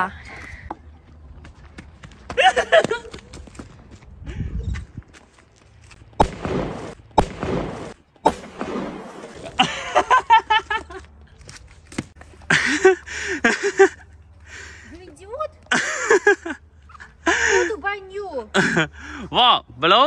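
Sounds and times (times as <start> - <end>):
loud firecracker bangs: 6.2 - 9.5.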